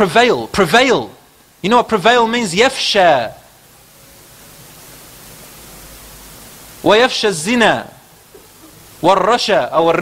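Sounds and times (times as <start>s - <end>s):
recording hiss: 0.0s - 10.0s
man speaking: 6.8s - 8.0s, 9.0s - 10.0s.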